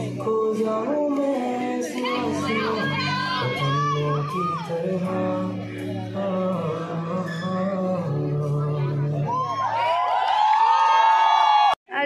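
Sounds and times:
steady music: 0.0 - 9.7
person singing: 0.0 - 9.9.

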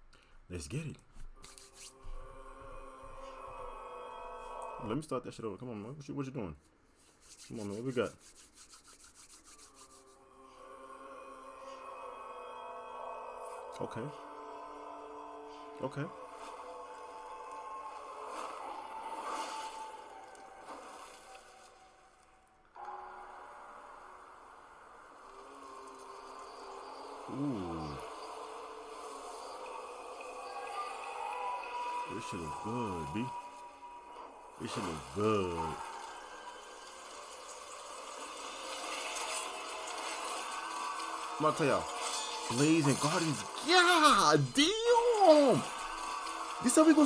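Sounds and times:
faint droning soundtrack: 0.0 - 47.0
hiss-like ambience: 22.8 - 47.0.

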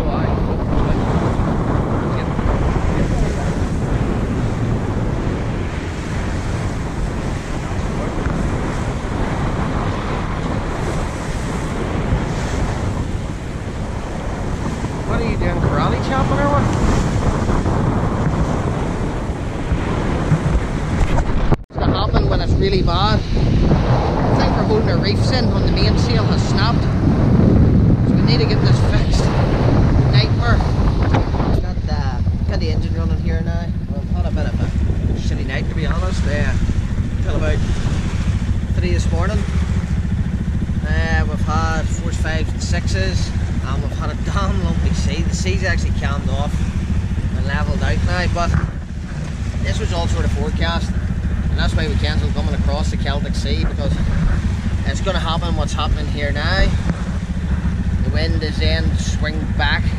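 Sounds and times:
water rushing along hull: 0.0 - 59.9
wind buffeting microphone: 0.0 - 59.9.

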